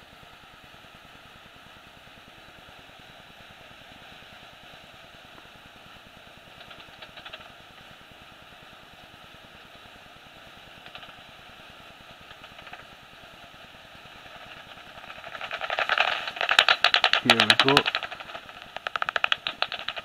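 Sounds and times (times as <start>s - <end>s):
bat echolocation clicks: 6.6s - 7.6s, 10.8s - 11.3s, 12.1s - 12.9s, 14.2s - 20.0s
bat detector hissing: 10.5s - 20.0s.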